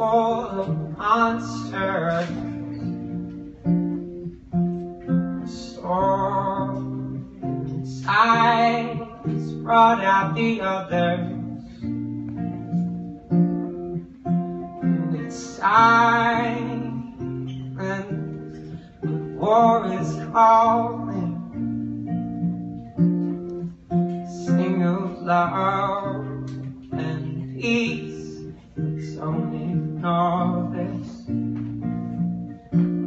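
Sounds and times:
man singing: 0.0 - 3.0, 5.1 - 13.0, 14.6 - 21.8, 24.2 - 31.5
acoustic guitar: 0.0 - 33.0.

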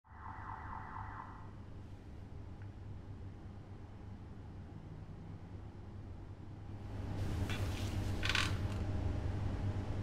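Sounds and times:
warbling electronic alarm tone: 0.1 - 1.7.

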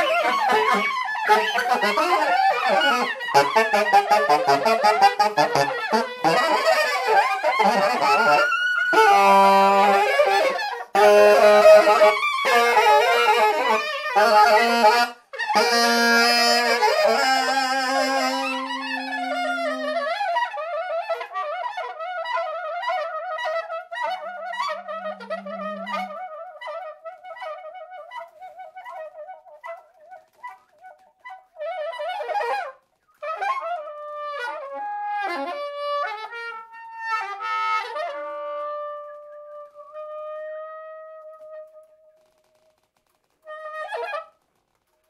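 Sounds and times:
saxophones playing in duet: 0.0 - 20.5, 24.1 - 26.5.

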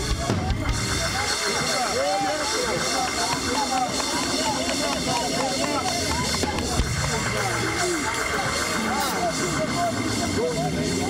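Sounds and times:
congregation crying out and wailing: 0.0 - 11.0.

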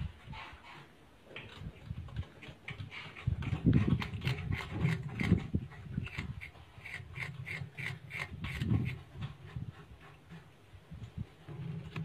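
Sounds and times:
rat gnawing bamboo: 1.4 - 10.4.

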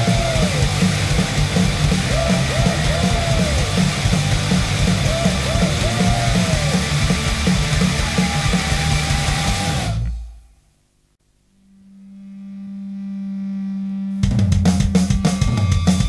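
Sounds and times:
punk rock band playing: 0.0 - 10.0, 14.3 - 16.0.

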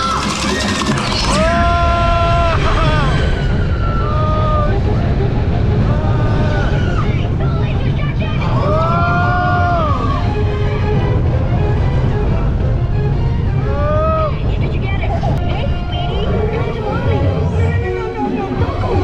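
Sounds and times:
roller coaster rumbling on track: 0.0 - 19.0
wind noise on microphone: 1.4 - 19.0.

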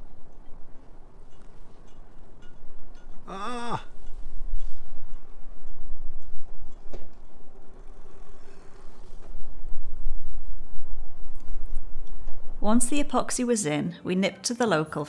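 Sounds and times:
wind buffeting microphone: 3.9 - 13.2.

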